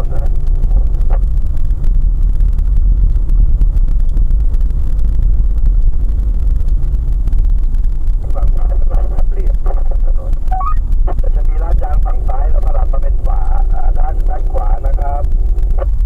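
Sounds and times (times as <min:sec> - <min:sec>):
car driving on unpaved road: 0:00.0 - 0:16.0
person talking: 0:08.2 - 0:15.3.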